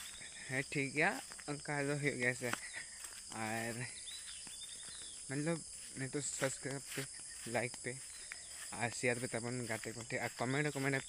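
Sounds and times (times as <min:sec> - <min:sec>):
high-pitched insect chirring: 0:00.0 - 0:11.0.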